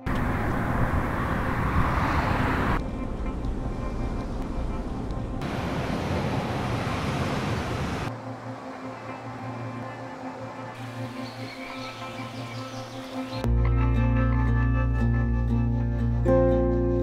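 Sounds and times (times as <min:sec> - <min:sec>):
road traffic noise: 0:00.0 - 0:13.5
held music drone: 0:00.0 - 0:17.0.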